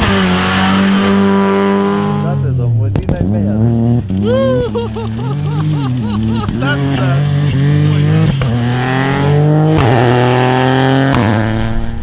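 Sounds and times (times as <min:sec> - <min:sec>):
rally car engine revving: 0:00.0 - 0:12.0.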